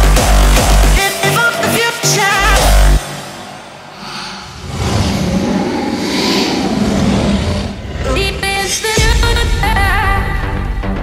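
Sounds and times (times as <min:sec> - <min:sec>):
rising noise sweep: 0:03.3 - 0:07.9.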